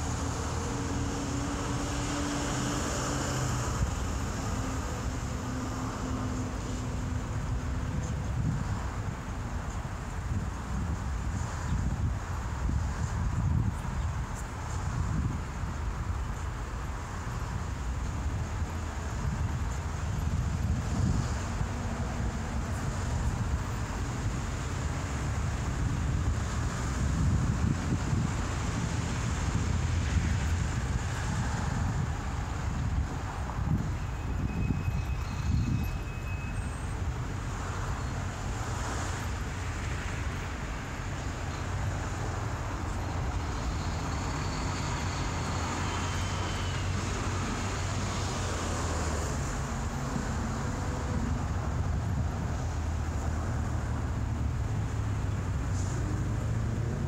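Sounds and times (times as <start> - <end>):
low rumble of traffic: 0.0 - 57.0
wind buffeting microphone: 0.0 - 57.0.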